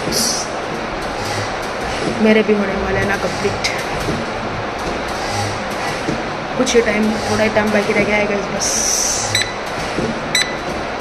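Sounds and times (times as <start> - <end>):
short high beeps: 9.3 - 9.6, 10.3 - 10.6.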